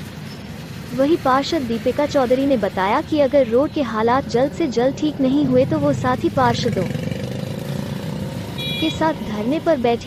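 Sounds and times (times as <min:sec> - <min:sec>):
traffic engines rumbling: 0:00.0 - 0:10.0.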